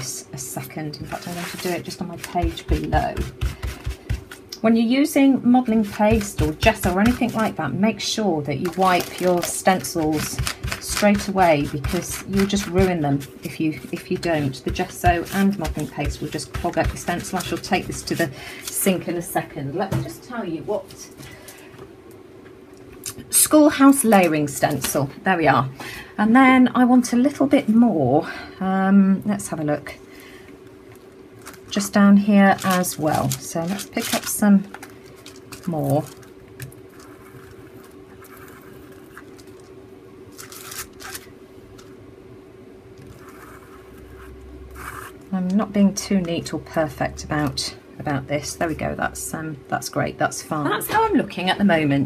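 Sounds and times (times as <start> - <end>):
low steady hum: 0.0 - 52.0
paste scraping on plastic stencil: 1.1 - 4.4, 8.6 - 18.8
plastic packet rustling: 8.6 - 12.6, 31.4 - 41.9.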